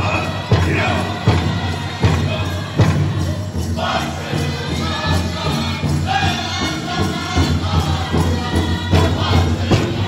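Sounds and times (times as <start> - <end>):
arena crowd noise: 0.0 - 10.0
large drum steady beats: 0.0 - 10.0.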